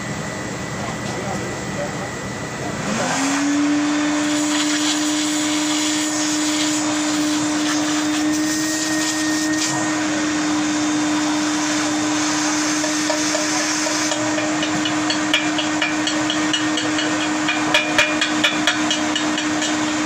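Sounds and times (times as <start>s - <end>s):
machine motor whirring: 2.7s - 17.6s.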